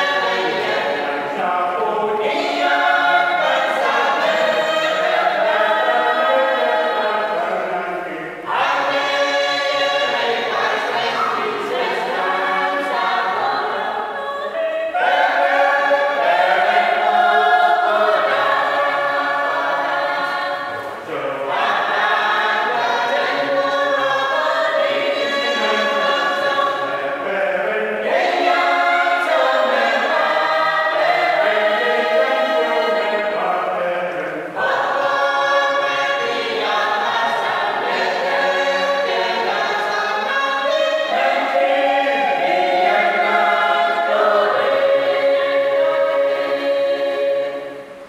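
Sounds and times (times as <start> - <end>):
group singing a hymn: 0.0 - 48.0.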